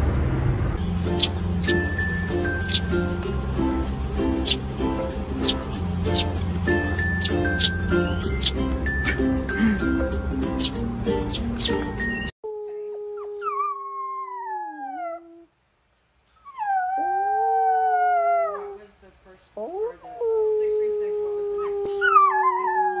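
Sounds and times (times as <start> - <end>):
music: 0.8 - 12.3
wolf pup howling: 11.6 - 15.5, 16.3 - 18.8, 21.5 - 23.0.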